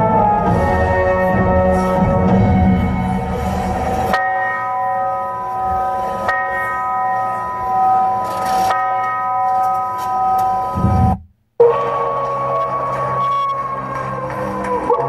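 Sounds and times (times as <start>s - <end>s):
background music: 0.0s - 9.2s, 10.0s - 15.0s
held tone: 10.2s - 13.7s.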